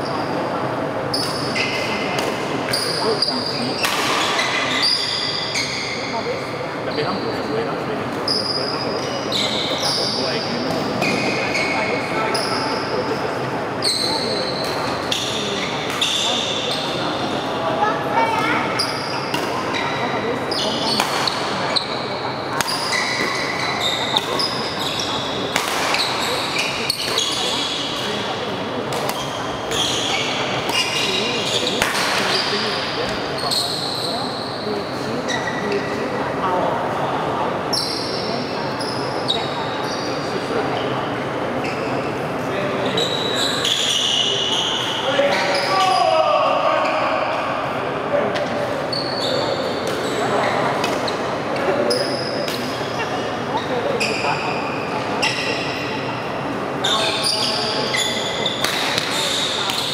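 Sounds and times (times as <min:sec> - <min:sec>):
shoes squeaking on court: 0:18.3 - 0:34.5, 0:48.4 - 0:56.0, 0:56.8 - 0:59.9.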